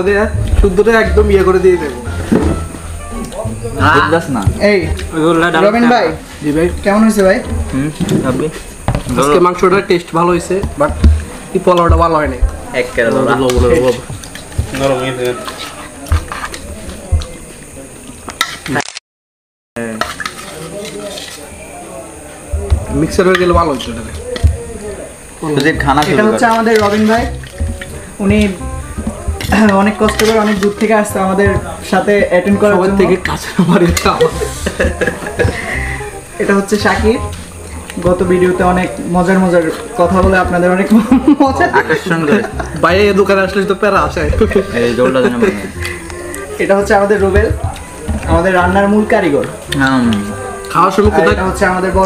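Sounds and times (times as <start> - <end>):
background music: 0.0 - 5.9, 25.4 - 52.0
men talking: 0.0 - 18.0, 19.8 - 52.0.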